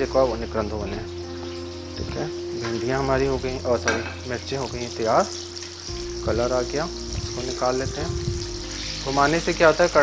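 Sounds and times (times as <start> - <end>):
man's voice: 0.0 - 1.1, 2.0 - 5.3, 6.2 - 8.4, 9.0 - 10.0
deep-frying sizzle in oil: 0.0 - 10.0.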